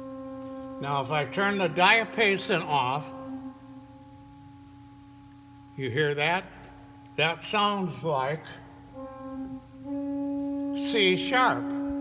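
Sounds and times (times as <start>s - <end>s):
organ pipe held tone: 0.0s - 12.0s
second organ pipe tone: 0.0s - 12.0s.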